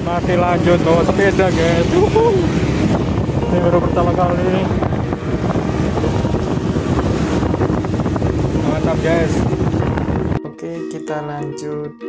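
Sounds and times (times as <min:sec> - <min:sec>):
motorcycle engine: 0:00.0 - 0:10.4
road noise: 0:00.0 - 0:10.5
wind buffeting microphone: 0:00.0 - 0:10.5.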